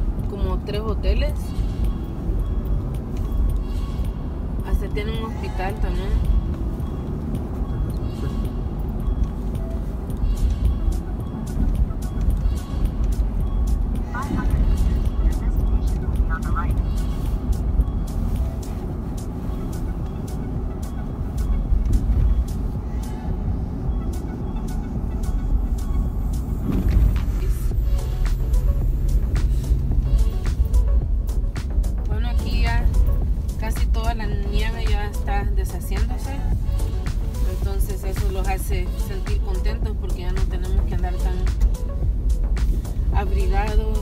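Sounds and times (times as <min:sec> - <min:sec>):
car cabin road rumble: 0:00.0 - 0:44.0
music playing: 0:00.0 - 0:44.0.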